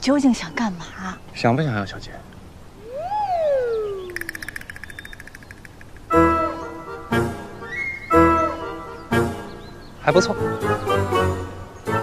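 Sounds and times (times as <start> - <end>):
whistled note sliding down: 2.8 - 4.6, 7.6 - 8.3
fast trill of high chirps: 2.8 - 6.2.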